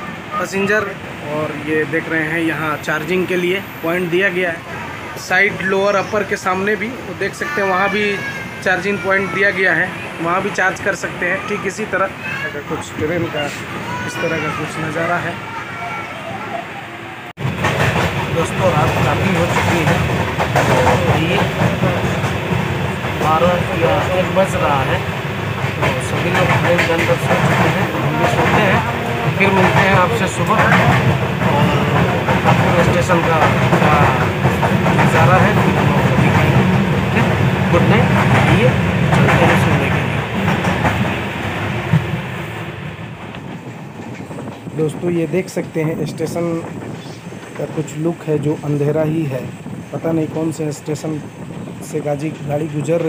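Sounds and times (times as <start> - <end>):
train rumbling on track: 0.0 - 53.0.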